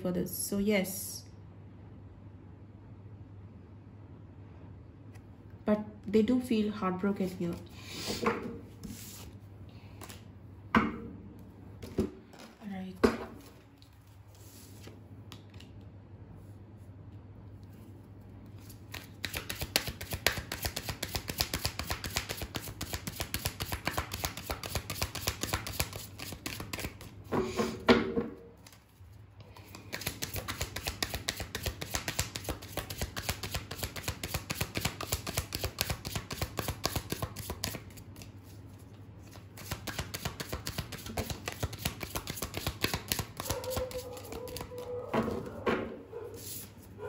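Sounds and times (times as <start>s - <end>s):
cards being shuffled: 8.8s - 10.3s, 13.4s - 15.9s, 18.4s - 27.2s, 29.6s - 45.0s.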